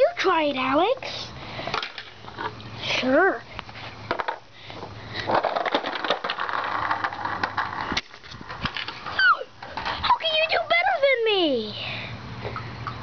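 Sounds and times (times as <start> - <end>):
skateboard wheels rolling on concrete: 0.0 - 11.8
skateboard wheels clicking on joints: 1.7 - 2.6, 4.1 - 10.8.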